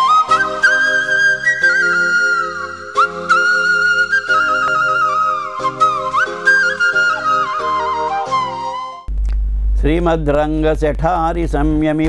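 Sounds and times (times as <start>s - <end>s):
flute melody: 0.0s - 9.1s.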